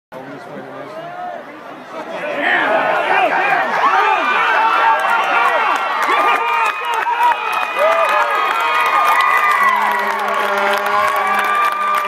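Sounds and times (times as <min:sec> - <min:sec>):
crowd shouting and cheering: 0:00.8 - 0:12.0.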